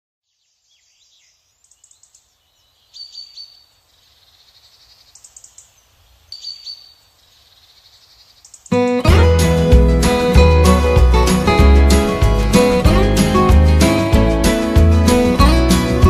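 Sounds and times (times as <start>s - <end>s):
small birds chirping: 0.2s - 9.1s.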